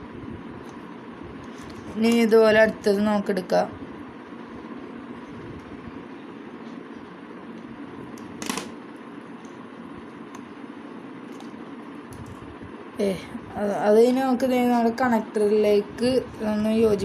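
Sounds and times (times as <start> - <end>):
steady background hum: 0.0 - 17.0.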